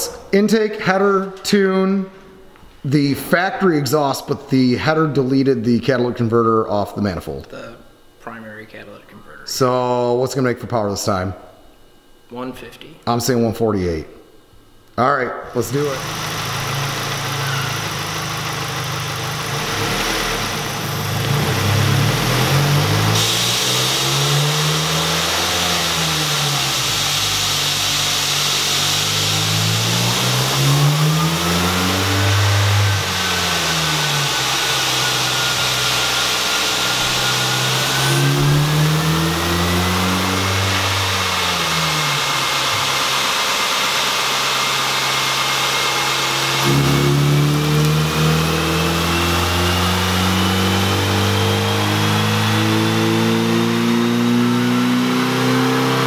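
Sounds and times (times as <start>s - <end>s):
car engine revving on dyno: 15.6s - 56.0s
thin whine rising in pitch: 15.6s - 56.0s.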